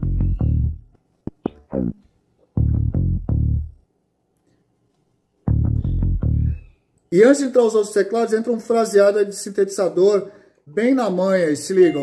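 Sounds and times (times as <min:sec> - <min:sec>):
bass guitar notes: 0:00.0 - 0:03.8, 0:05.5 - 0:06.6.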